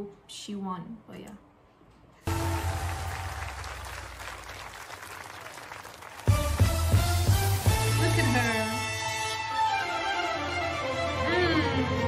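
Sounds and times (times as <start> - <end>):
audience applause: 2.3 - 7.6.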